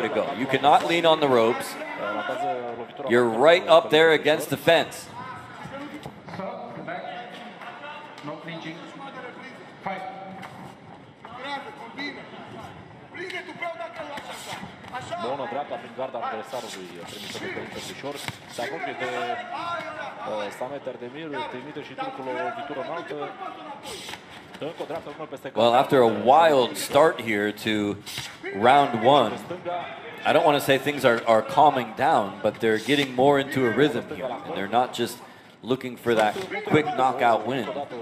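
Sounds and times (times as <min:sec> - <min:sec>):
men calling out in a hall: 0:00.0 - 0:10.4, 0:11.2 - 0:38.0.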